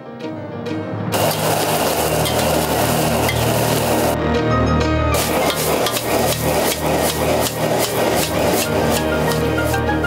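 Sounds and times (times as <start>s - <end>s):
shrimp sizzling in hot oil: 1.2s - 4.2s, 5.2s - 10.0s.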